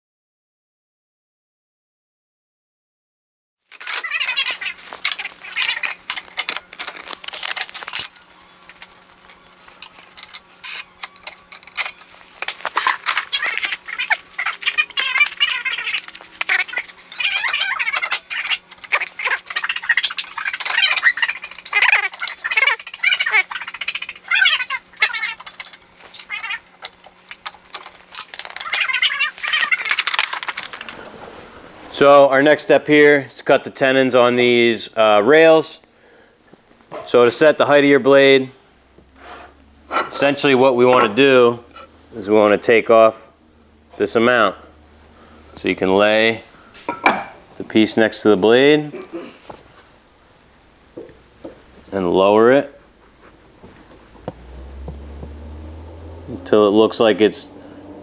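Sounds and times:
metal blades clinking and scraping: 9.8 - 14.2
short metallic squeaks: 10.2 - 26.5.

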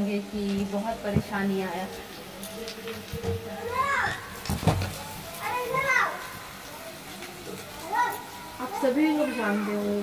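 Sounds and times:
child calling out: 5.4 - 6.3.

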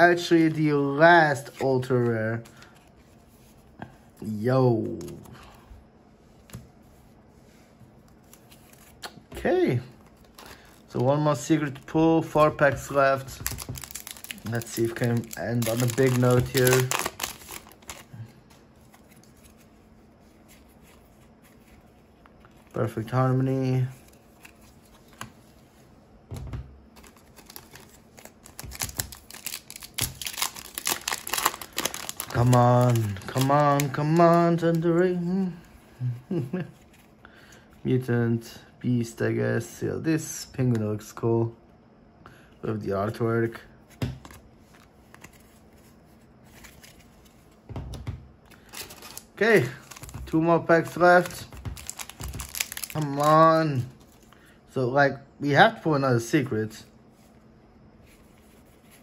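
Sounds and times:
cards clicking and rustling: 10.0 - 19.7, 27.0 - 35.0, 48.0 - 54.3.

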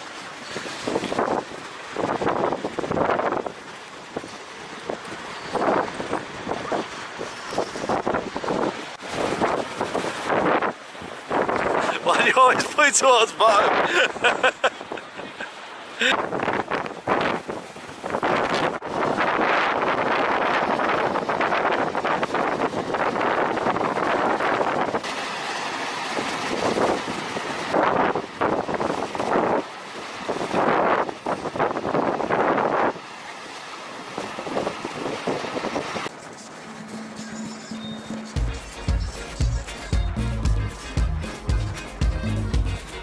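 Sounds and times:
wind buffeting microphone: 0.0 - 12.7, 16.0 - 25.1, 26.1 - 33.1, 34.1 - 36.1
waves breaking on rocky shore: 0.0 - 39.9.

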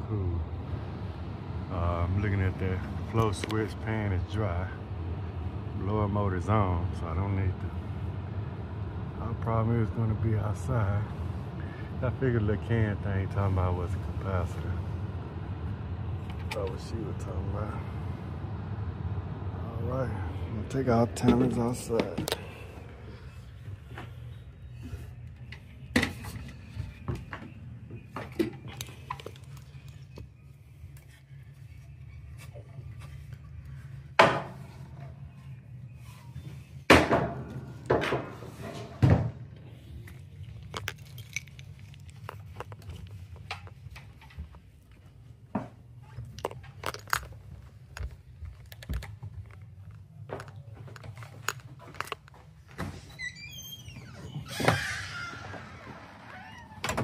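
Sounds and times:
steady low hum: 0.0 - 54.6.

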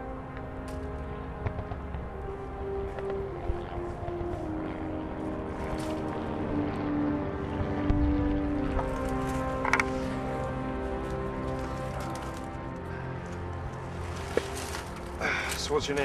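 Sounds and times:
slow orchestral film score: 0.0 - 16.0.

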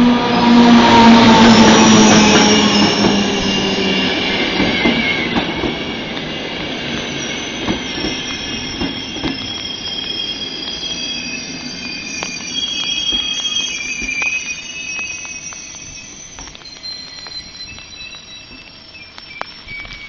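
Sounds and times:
high wheel squeal: 0.0 - 20.0
train coaches rolling past: 0.0 - 20.0.

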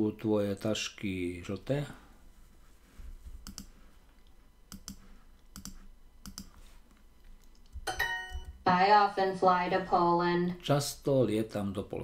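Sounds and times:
computer mouse button clicking: 3.4 - 3.7, 5.6 - 6.5.

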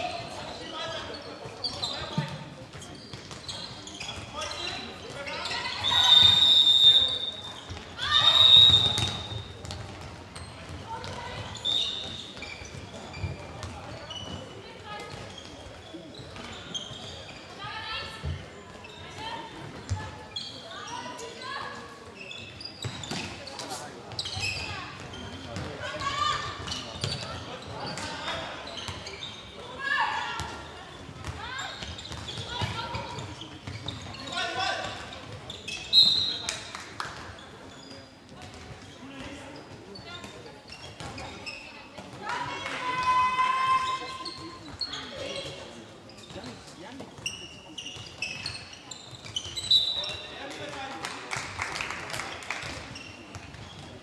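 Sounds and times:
ball bouncing on court: 1.7 - 5.3, 7.6 - 17.2, 24.1 - 29.3, 30.4 - 34.2, 38.3 - 39.3.

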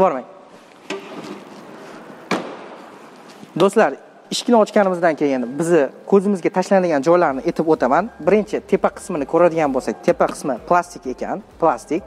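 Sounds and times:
car rear door slamming: 2.3 - 2.8.

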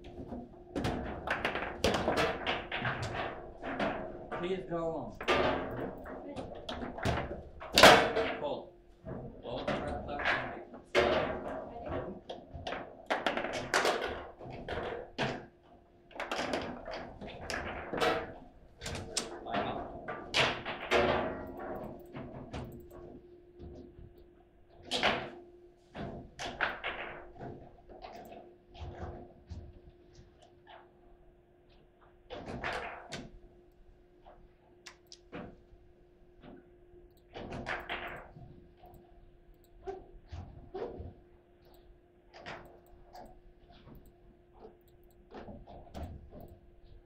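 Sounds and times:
table football knocks and clacks: 0.0 - 4.4.

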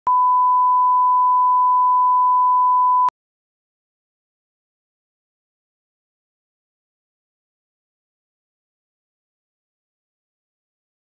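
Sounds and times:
steady test tone beep: 0.1 - 3.1.

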